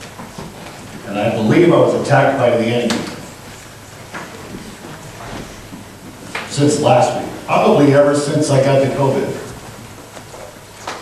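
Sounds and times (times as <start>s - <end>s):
man's voice: 6.5s - 9.5s.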